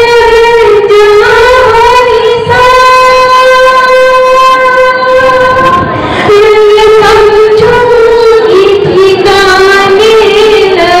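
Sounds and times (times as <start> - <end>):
woman singing a long note: 0.0 - 11.0.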